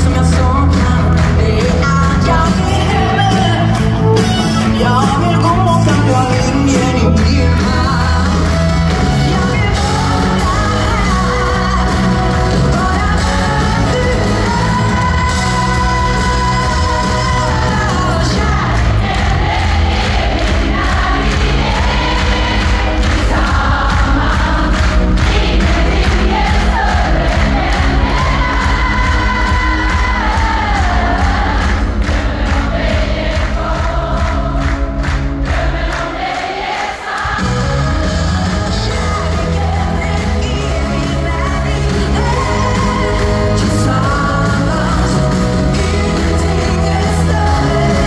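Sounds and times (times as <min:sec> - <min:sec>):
person singing: 0:00.0 - 0:19.3, 0:37.2 - 0:48.0
live pop-rock band: 0:00.0 - 0:48.0.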